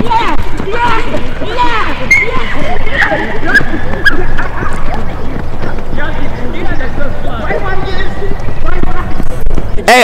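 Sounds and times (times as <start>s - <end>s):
running footfalls on rubber track: 0.0s - 10.0s
wind rumbling on microphone: 0.0s - 10.0s.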